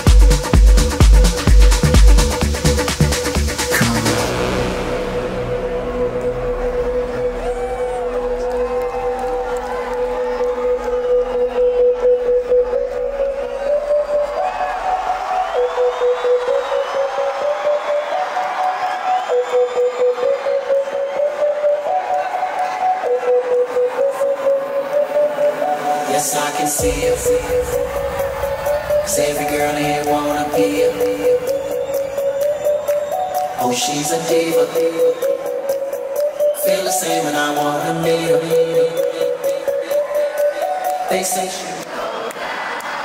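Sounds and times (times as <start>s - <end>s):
deep bass: 0.0s - 11.4s, 26.8s - 31.4s
pulsing rhythm: 0.0s - 42.0s.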